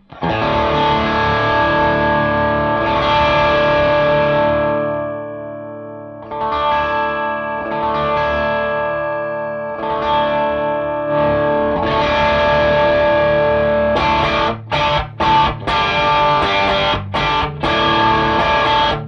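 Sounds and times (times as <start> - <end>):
overdriven electric guitar chords: 0.0 - 19.0.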